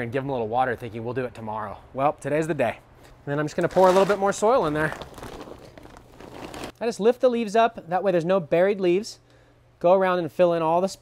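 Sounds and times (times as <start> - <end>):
soil pouring from a bag: 3.5 - 6.8
bag shifting: 3.6 - 6.8.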